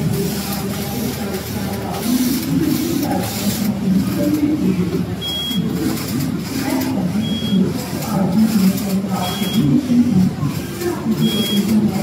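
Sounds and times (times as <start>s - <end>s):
crowd chatter: 0.0s - 12.0s
knitting machine carriage whirring: 0.0s - 12.0s.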